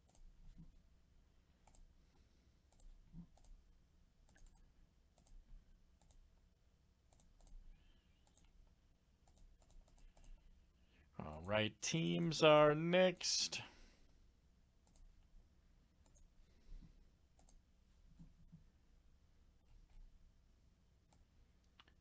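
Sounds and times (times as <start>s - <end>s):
computer mouse clicks: 0.0s - 0.7s, 1.6s - 1.9s, 2.7s - 3.6s, 4.2s - 5.4s, 6.0s - 6.3s, 7.1s - 7.6s, 8.2s - 8.6s, 9.2s - 10.4s, 14.8s - 15.2s, 16.0s - 16.3s, 17.3s - 17.6s.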